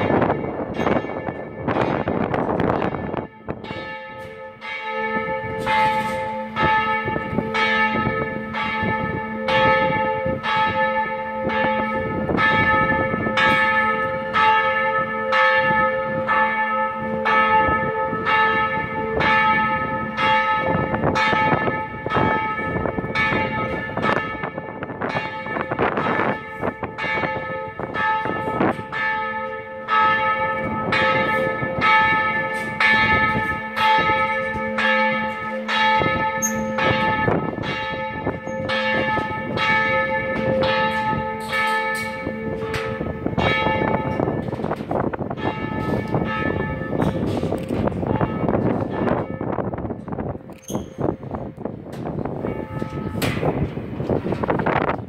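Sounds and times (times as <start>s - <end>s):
church bell ringing: 0.0s - 55.0s.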